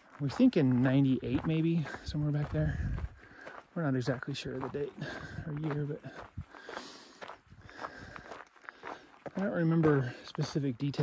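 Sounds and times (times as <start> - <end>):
footsteps on rocky dirt trail: 0.0 - 11.0.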